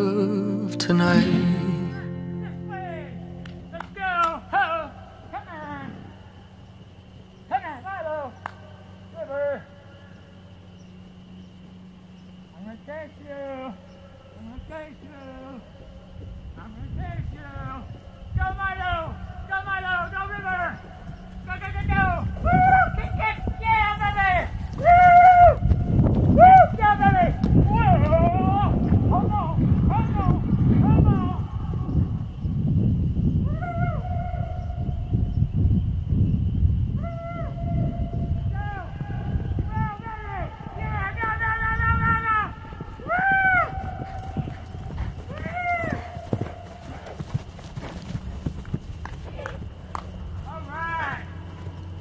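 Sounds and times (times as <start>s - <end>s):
person's high-pitched calls: 0.0s - 2.9s
horses galloping on turf: 3.8s - 31.3s, 40.2s - 52.0s
hoofbeats on grass: 18.4s - 31.2s, 38.8s - 52.0s.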